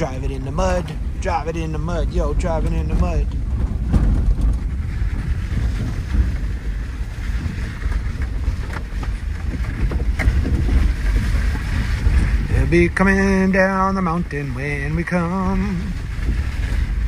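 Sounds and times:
car tyres and engine rumble: 0.0s - 17.0s
knocks from road surface: 2.6s - 12.5s.

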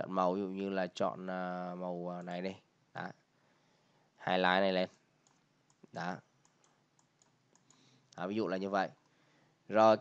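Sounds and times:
computer mouse clicks: 5.2s - 8.2s, 8.9s - 9.2s.

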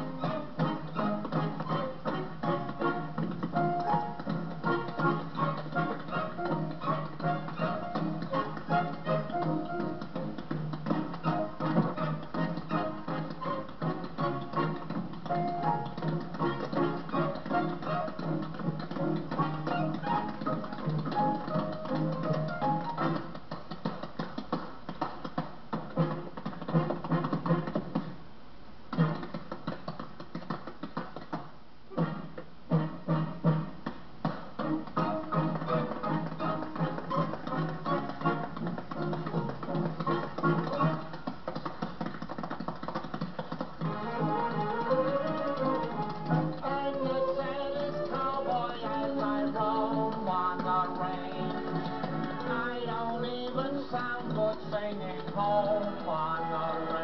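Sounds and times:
tap-dance taps: 0.0s - 28.2s, 28.9s - 57.0s
western swing band music: 0.0s - 28.2s, 28.9s - 31.3s, 31.9s - 57.0s.

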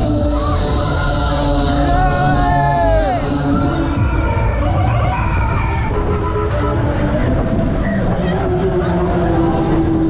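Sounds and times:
funfair ride rumble: 0.0s - 10.0s.

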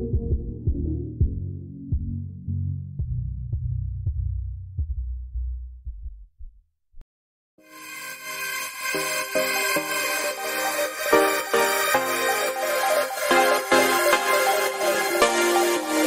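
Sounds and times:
throbbing low beat: 0.0s - 6.6s
electronic track: 7.6s - 16.0s
muffled electronic music: 8.2s - 16.0s.

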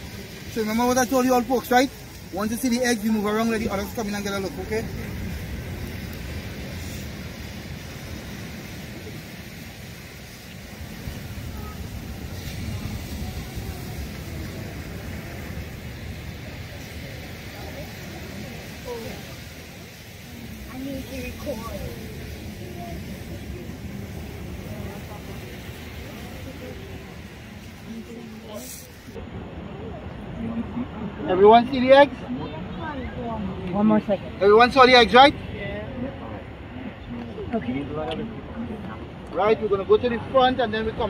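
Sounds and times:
people murmuring: 0.0s - 41.0s
surf rushing: 0.0s - 41.0s
wind: 0.0s - 41.0s.

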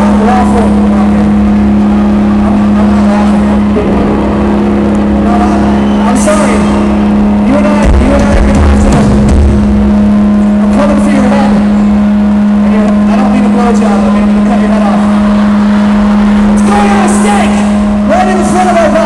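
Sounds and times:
distorted live pop-punk music: 0.0s - 19.0s
steady low drone: 0.0s - 19.0s.

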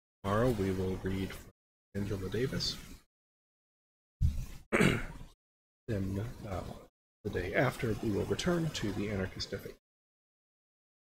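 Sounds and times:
person clearing throat: 4.7s - 5.2s.

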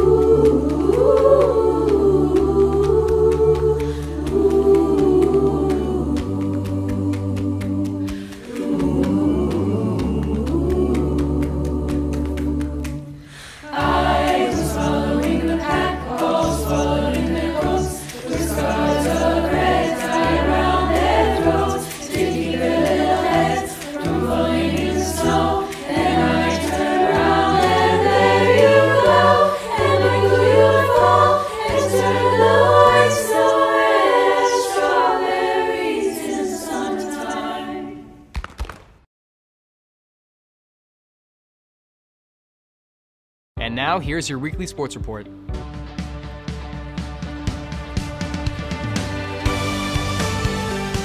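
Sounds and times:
choir singing a cappella: 0.0s - 38.3s, 47.2s - 51.0s.

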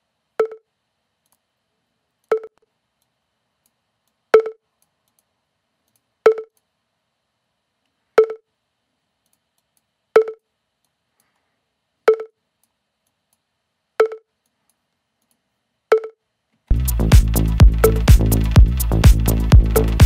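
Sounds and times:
synth pluck percussion hits: 16.7s - 20.0s.

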